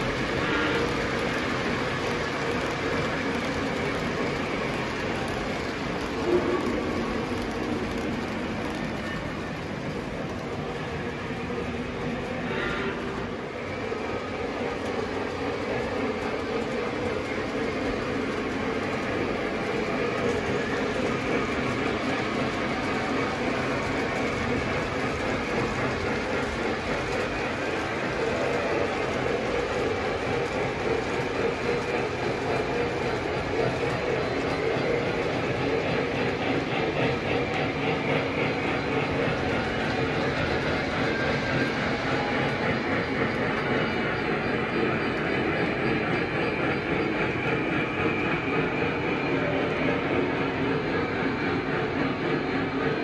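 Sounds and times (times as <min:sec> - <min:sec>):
model trains clattering on track: 0:00.0 - 0:53.0.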